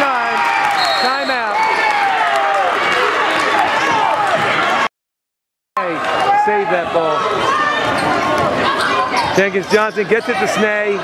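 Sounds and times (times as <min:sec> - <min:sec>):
voices in a gym: 0:05.8 - 0:11.0.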